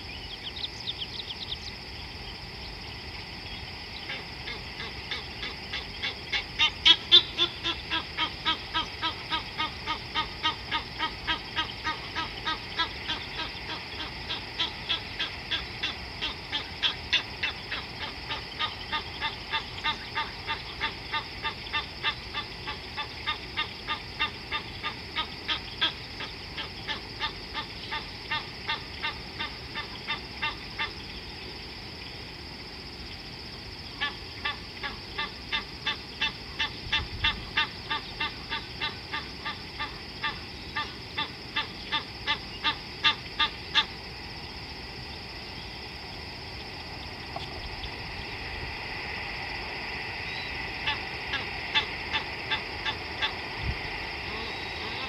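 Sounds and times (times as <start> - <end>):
steady high hiss: 0.0 - 55.0.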